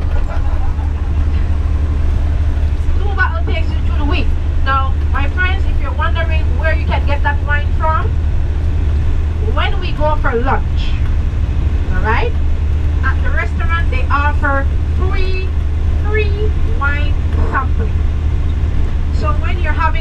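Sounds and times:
bus low rumble from inside: 0.0 - 20.0
voices talking: 3.0 - 8.1, 9.4 - 11.1, 11.8 - 12.4, 13.0 - 18.0, 19.2 - 20.0.

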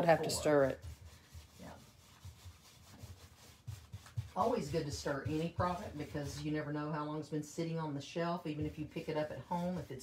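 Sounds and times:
rag rubbing on wood: 0.0 - 6.8, 8.5 - 10.0.

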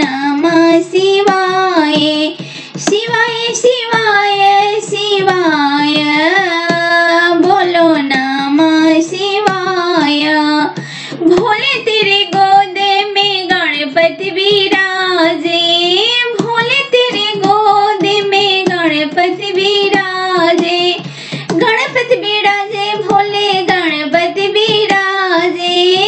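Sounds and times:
high voice singing folk song: 0.0 - 26.0.

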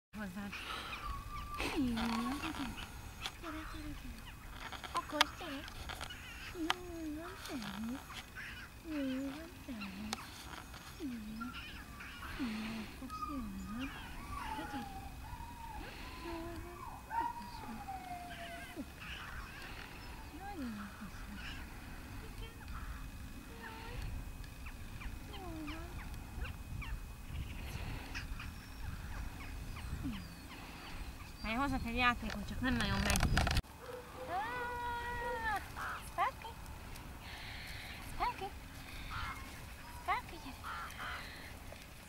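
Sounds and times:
puppy whining and crying: 0.6 - 2.8, 11.3 - 20.0
wind rumbling on microphone: 19.0 - 33.6.

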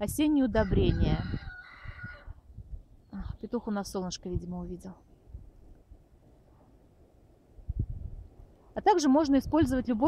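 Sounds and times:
rooster crowing: 0.6 - 2.4.

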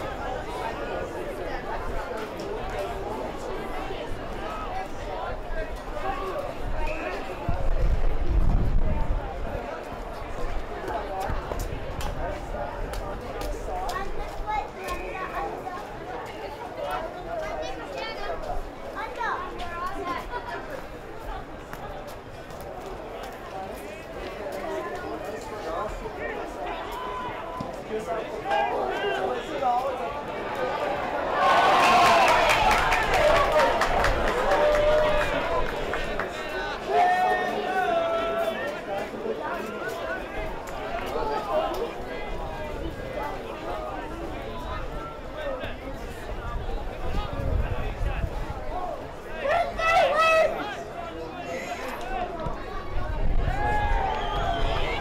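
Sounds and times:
chatter and calls of spectators: 0.0 - 55.0.

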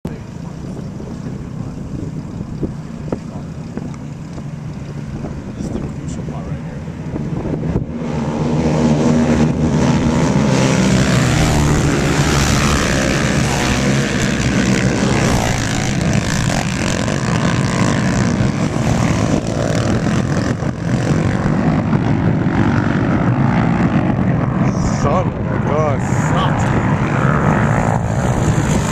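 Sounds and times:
racing quad engines revving: 0.1 - 28.9.

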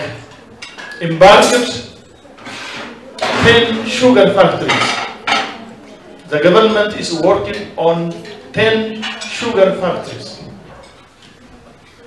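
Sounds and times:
man speaking into microphone: 0.0 - 0.2, 1.0 - 2.0, 3.3 - 4.9, 6.3 - 10.5.

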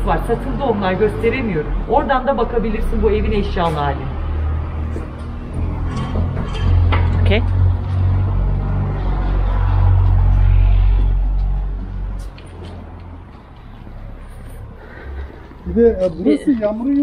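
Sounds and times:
loud low rumble: 2.5 - 12.2.

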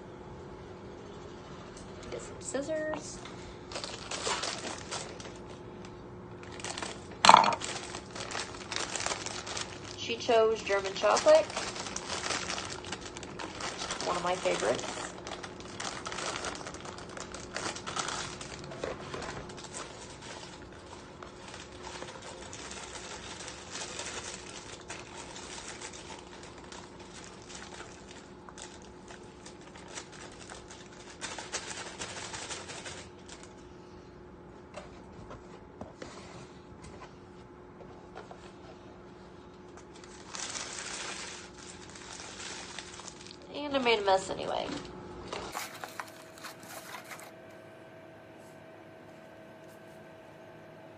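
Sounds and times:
plastic bag crinkling: 3.6 - 33.7, 39.6 - 47.5.

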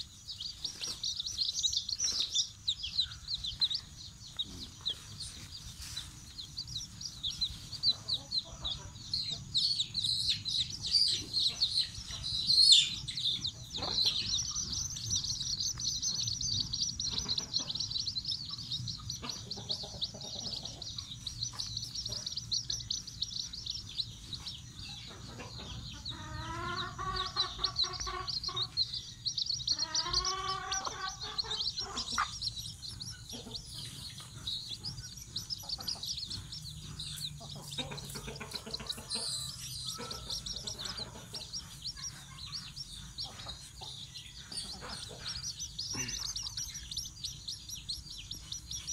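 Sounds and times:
chicks peeping: 0.0 - 48.9
hen clucking: 0.0 - 48.9.

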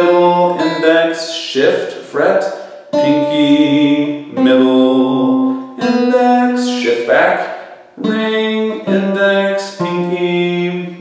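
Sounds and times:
acoustic guitar single notes: 0.0 - 11.0.

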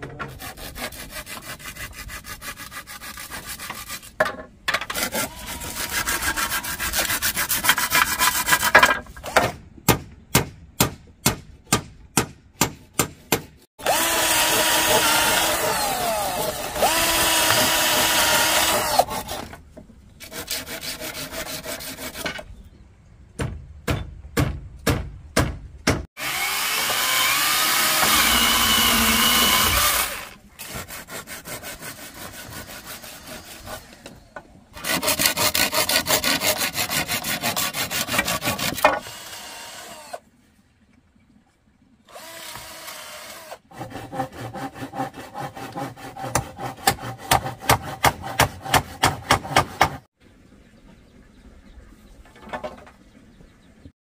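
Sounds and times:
hand saw cutting bamboo: 0.2 - 4.2, 4.8 - 9.4, 12.6 - 19.6, 20.2 - 22.4, 26.2 - 34.1, 34.8 - 40.2, 42.1 - 50.1
cordless drill running: 13.8 - 19.0, 26.2 - 30.2.

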